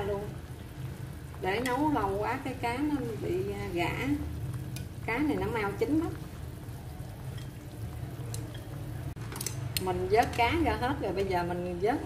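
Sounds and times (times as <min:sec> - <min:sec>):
soup simmering: 0:00.0 - 0:10.8
gas burner rumble: 0:00.0 - 0:12.0
utensils clicking on metal wok: 0:09.3 - 0:11.5.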